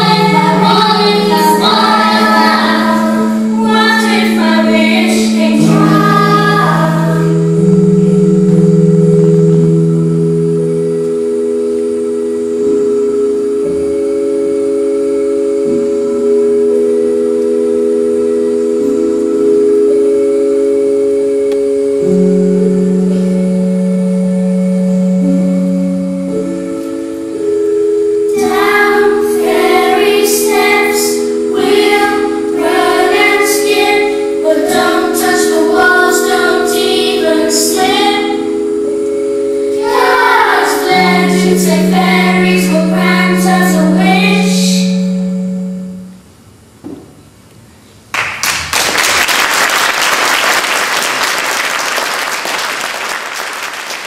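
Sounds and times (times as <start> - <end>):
children's choir singing: 0.0 - 7.9, 28.3 - 45.6
sustained keyboard chords: 0.0 - 48.8.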